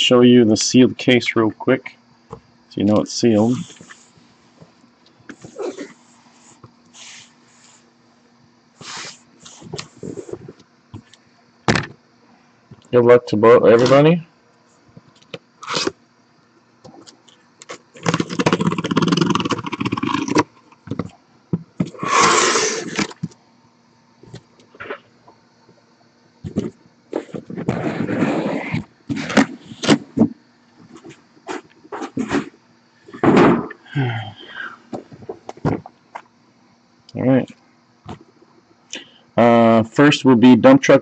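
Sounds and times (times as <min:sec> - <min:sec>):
cardboard scraping and rustling: 0:17.7 - 0:20.4, 0:26.5 - 0:30.3, 0:30.9 - 0:32.6.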